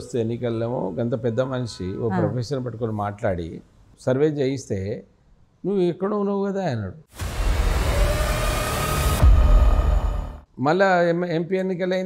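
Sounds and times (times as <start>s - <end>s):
loud rush of noise: 7.1s - 10.4s.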